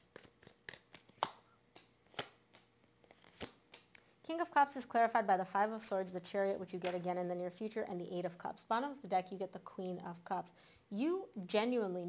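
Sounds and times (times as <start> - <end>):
cards being shuffled: 0.0 - 4.0
sharp card snaps: 0.1 - 4.0.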